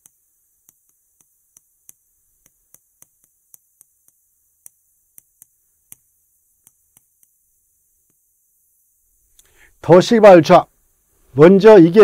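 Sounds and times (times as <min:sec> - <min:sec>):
chalk ticking on a chalkboard: 0:00.0 - 0:09.6.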